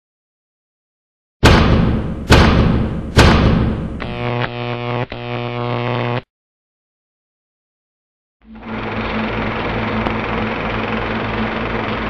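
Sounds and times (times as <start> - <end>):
heavy impact sound effects: 1.4 - 4.0.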